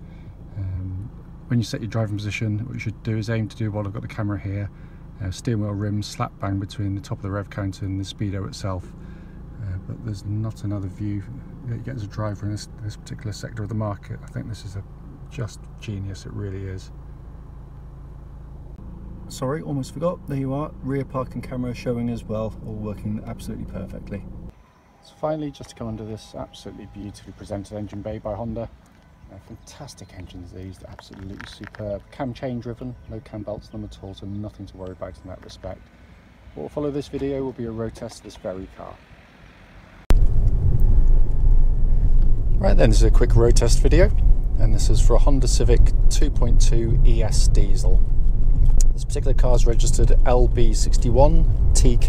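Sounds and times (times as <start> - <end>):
diesel engine idling: 0.0 - 38.9, 40.1 - 52.0
road noise inside car: 0.0 - 52.0.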